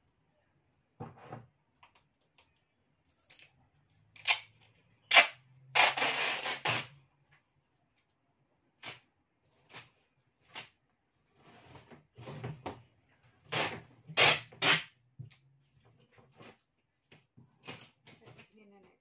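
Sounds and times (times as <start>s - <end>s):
packing tape ripping off roll: 4.2s - 4.5s, 5.1s - 7.0s, 13.5s - 14.9s.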